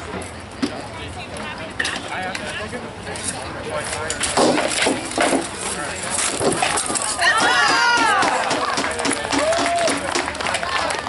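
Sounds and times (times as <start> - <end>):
onlookers' voices: 0.0 - 11.0
swords striking shields and armour: 4.2 - 5.5, 6.2 - 9.4.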